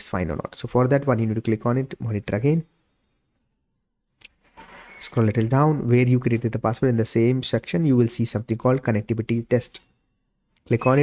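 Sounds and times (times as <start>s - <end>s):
faint noise: 0.0s - 11.0s.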